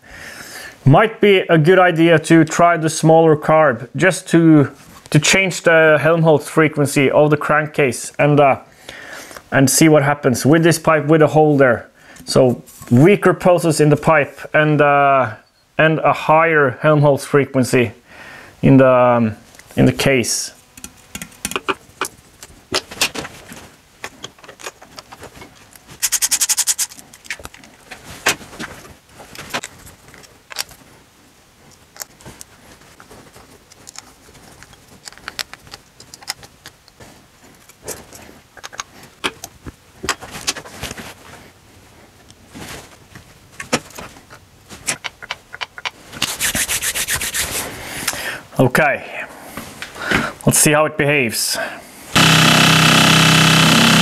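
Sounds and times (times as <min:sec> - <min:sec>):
rapid evenly spaced clicking: 0:26.0 - 0:27.0.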